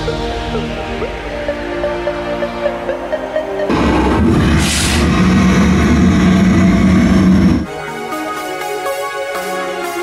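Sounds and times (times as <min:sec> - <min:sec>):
electronic background music: 0:00.0 - 0:10.0
gas flame fireball roar: 0:03.7 - 0:07.7.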